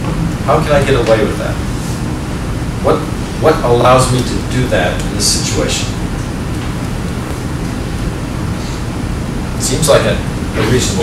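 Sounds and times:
steady hissing room noise: 0.0 - 11.0.

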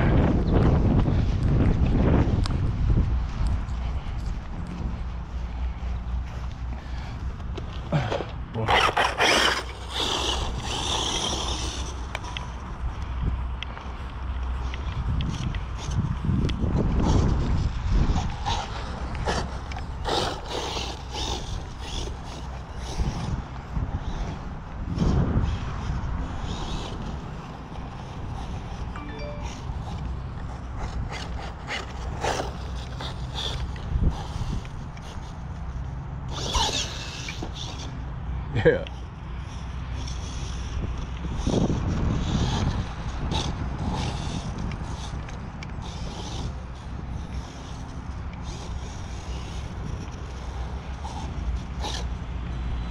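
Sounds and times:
wind buffeting microphone: 0.0 - 52.9
rc car motor whirring: 7.5 - 13.1, 14.6 - 52.9.

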